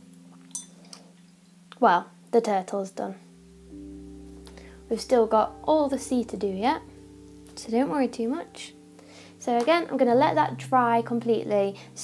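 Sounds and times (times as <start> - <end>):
faint background music: 0.0 - 12.0
light clink: 0.5 - 1.0.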